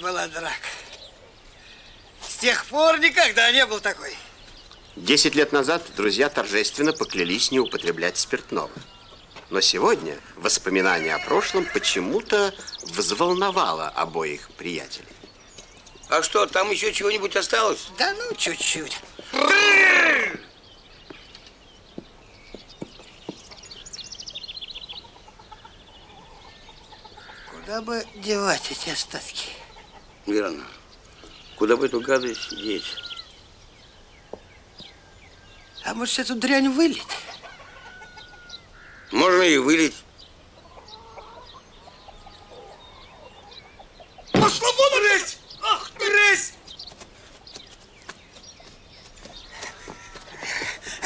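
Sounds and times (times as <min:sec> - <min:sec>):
songbird chirping: 0:00.0 - 0:51.0
hens clucking: 0:07.9 - 0:13.4, 0:24.8 - 0:30.9, 0:37.0 - 0:44.5, 0:48.5 - 0:51.0
sharp knocks: 0:44.3 - 0:44.6.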